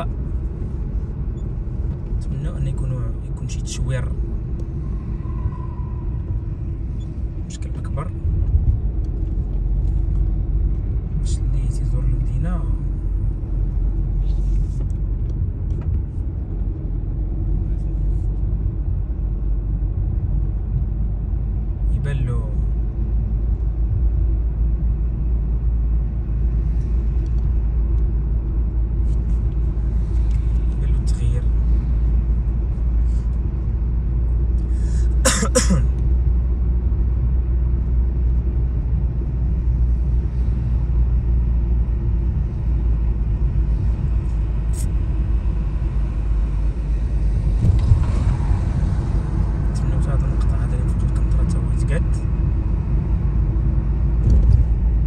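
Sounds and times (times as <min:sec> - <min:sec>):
road and engine rumble in car: 0:00.0 - 0:55.0.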